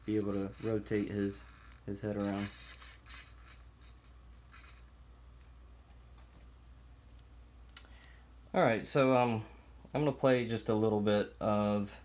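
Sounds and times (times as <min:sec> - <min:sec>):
low steady hum: 0:00.0 - 0:12.0
camera handling rustles and ticks: 0:00.2 - 0:04.8.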